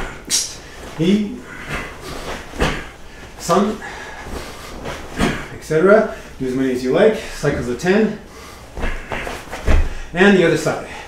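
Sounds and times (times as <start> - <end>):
swish of breath and cloth: 0.2 - 6.4, 8.4 - 10.1
bare foot thud on wooden floor: 8.8 - 10.0.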